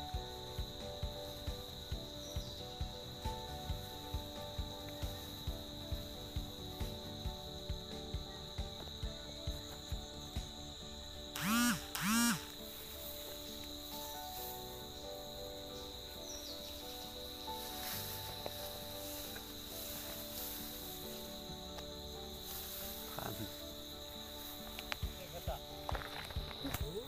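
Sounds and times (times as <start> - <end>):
insects chirring: 0.0 - 27.0.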